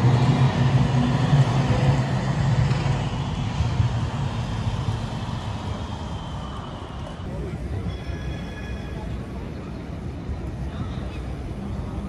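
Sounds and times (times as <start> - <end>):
street traffic: 0.0 - 12.0
tram passing: 0.0 - 12.0.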